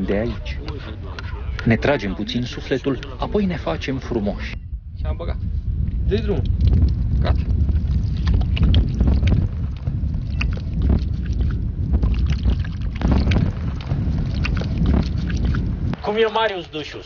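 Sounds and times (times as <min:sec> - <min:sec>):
wind buffeting microphone: 0:00.0 - 0:17.0
water splashing onto skin: 0:06.4 - 0:16.0.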